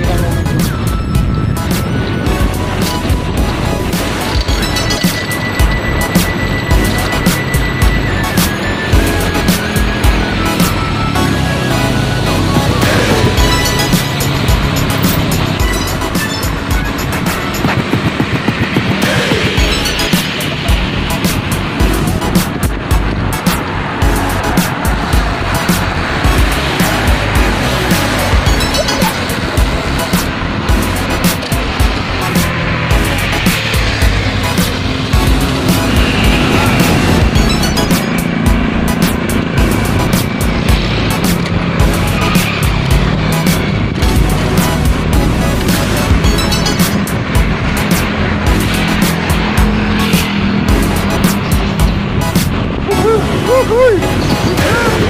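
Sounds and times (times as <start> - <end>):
background music with steady beat: 0.0 - 55.0
road traffic noise: 0.0 - 55.0.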